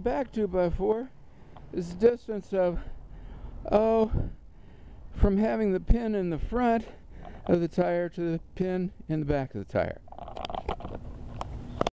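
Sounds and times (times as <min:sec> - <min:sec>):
outdoor background noise: 0:00.0 - 0:12.0
camera handling knocks and rustles: 0:10.1 - 0:11.9.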